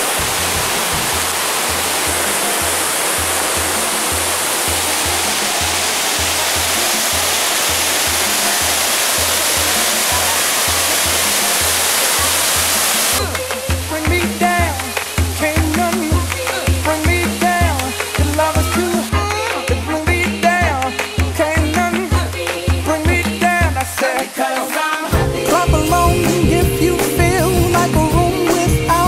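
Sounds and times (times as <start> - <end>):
music with steady beat: 0.0 - 29.0
person singing: 0.0 - 29.0
waterfall rushing: 0.0 - 29.0.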